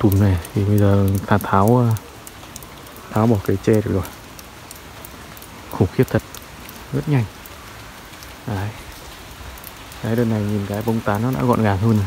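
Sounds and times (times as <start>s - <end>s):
heavy rain: 0.0s - 12.0s.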